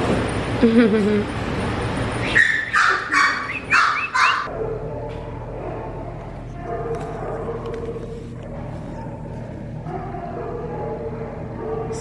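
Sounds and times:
dog barking: 2.4 - 8.0, 8.9 - 12.0.

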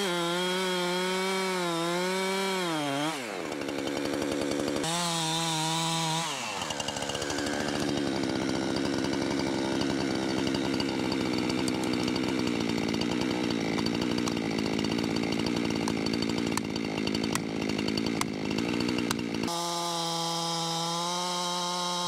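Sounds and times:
chainsaw idling: 0.0 - 22.0.

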